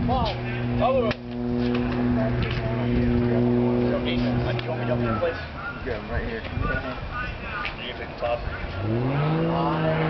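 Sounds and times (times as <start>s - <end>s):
steady low machine hum: 0.0s - 5.2s.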